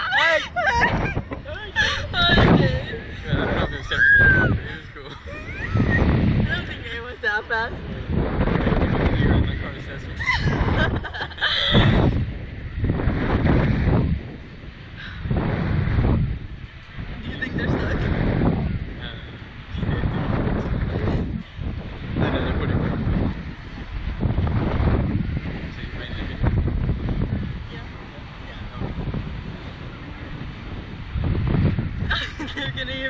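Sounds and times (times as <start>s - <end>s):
wind buffeting microphone: 0.0s - 33.0s.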